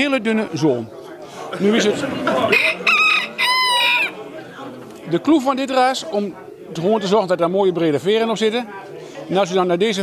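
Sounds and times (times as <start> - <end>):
rooster crowing: 2.5 - 4.2.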